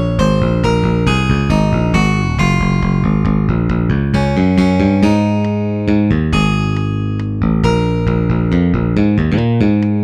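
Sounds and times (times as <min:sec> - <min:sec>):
instrumental music: 0:00.0 - 0:10.0
plucked bass notes ringing: 0:00.0 - 0:10.0.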